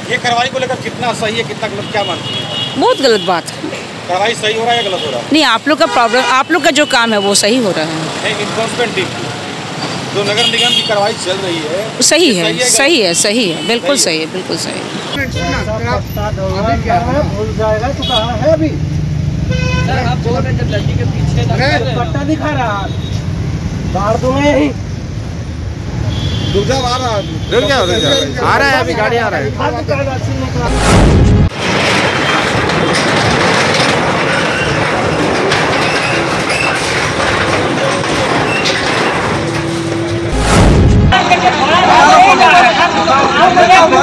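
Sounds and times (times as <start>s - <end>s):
street traffic rumble: 0.0s - 44.0s
vehicle horn toot: 10.4s - 11.2s, 18.0s - 18.4s, 19.5s - 20.0s, 26.1s - 28.4s.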